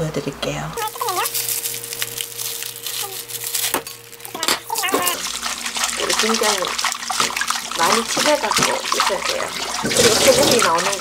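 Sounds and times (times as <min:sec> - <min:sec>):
plastic bag rustling: 0:00.8 - 0:08.5
water running in metal sink: 0:00.8 - 0:11.0.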